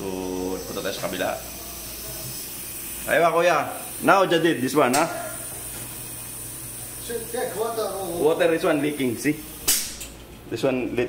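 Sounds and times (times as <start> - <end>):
machinery electrical hum with hiss: 0.0 - 11.0.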